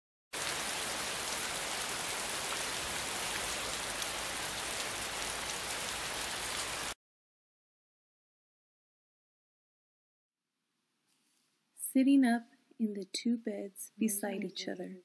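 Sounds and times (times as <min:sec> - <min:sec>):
heavy rain falling: 0:00.4 - 0:07.0.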